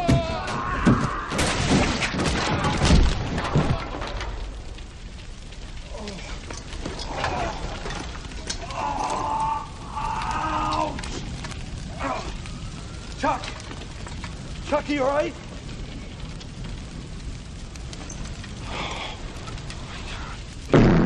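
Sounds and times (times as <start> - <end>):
fire burning: 0.0 - 21.0.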